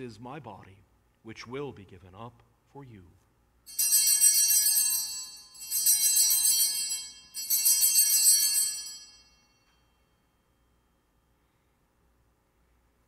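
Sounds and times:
altar bells jingling: 0:03.7 - 0:09.9.

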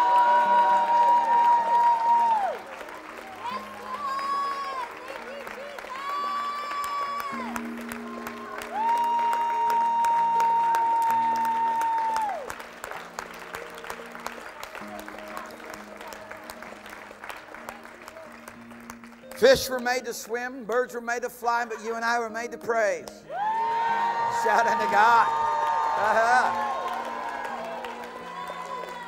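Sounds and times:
people clapping: 0:00.0 - 0:20.9, 0:23.0 - 0:29.0.

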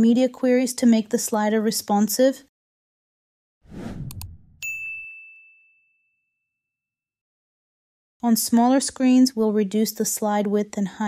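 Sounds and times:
short whoosh: 0:03.7 - 0:04.6
bright bell ding: 0:04.6 - 0:05.9.

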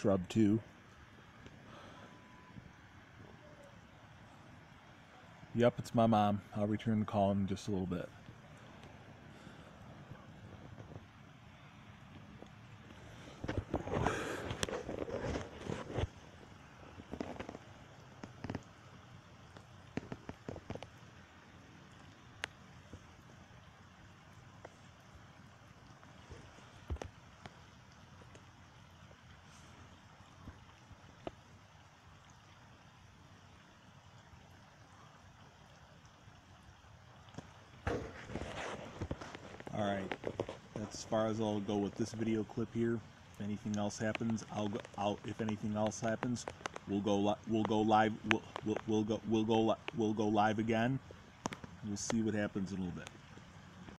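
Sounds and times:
steady rain falling: 0:00.0 - 0:53.9
knocks and rustles: 0:13.3 - 0:18.7, 0:19.5 - 0:21.0, 0:37.4 - 0:41.0, 0:46.2 - 0:46.9.

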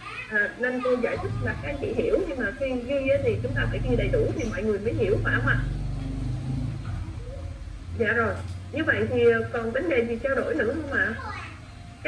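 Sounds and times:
faint voices: 0:00.0 - 0:12.0
low motor hum: 0:00.9 - 0:11.2.

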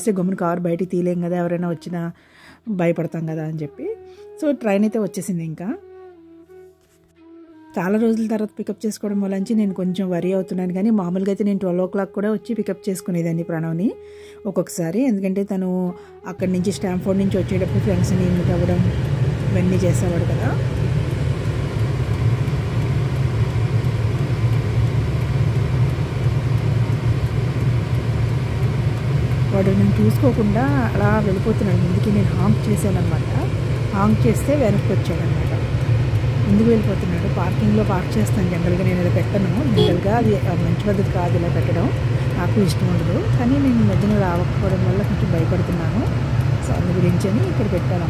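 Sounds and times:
person talking: 0:14.7 - 0:18.9, 0:19.5 - 0:20.6, 0:29.5 - 0:35.6, 0:36.4 - 0:48.0
steady low car hum: 0:16.4 - 0:48.0.

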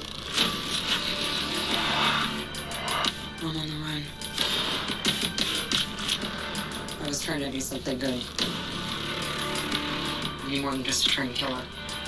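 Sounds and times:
trailer music: 0:00.0 - 0:10.5
rushing whoosh: 0:01.6 - 0:03.2.

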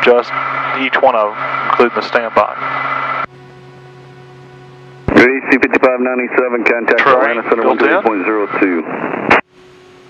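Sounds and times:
faint humming tones: 0:00.0 - 0:10.0
steady electrical hum: 0:00.0 - 0:10.0.

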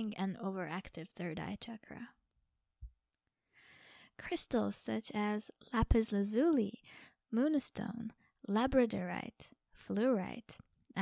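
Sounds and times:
soft intake of breath: 0:03.6 - 0:04.2.

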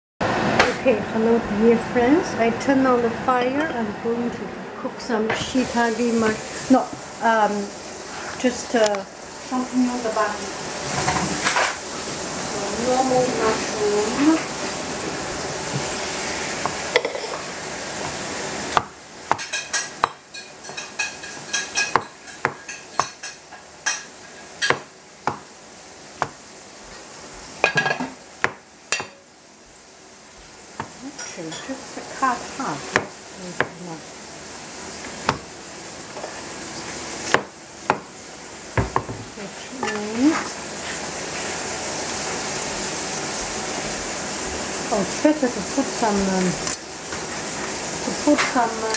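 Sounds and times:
steady background hiss: 0:00.3 - 0:48.9
cleaver knocking on cutting board: 0:24.7 - 0:25.5, 0:28.4 - 0:29.1, 0:32.9 - 0:33.8, 0:35.2 - 0:35.5, 0:37.3 - 0:38.1, 0:38.8 - 0:39.3.

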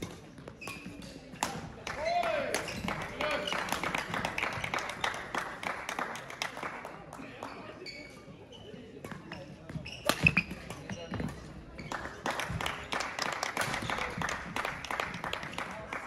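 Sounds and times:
murmur of distant voices: 0:00.0 - 0:16.0
knocks and taps on court floor: 0:09.1 - 0:15.8.

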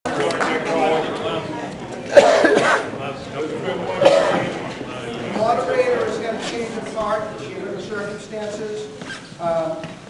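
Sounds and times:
people talking: 0:00.1 - 0:10.0
person coughing loudly: 0:02.1 - 0:02.9, 0:04.0 - 0:04.5.

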